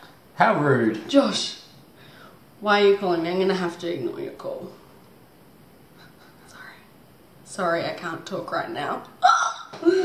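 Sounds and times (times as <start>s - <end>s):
woman whispering: 6.4s - 6.9s.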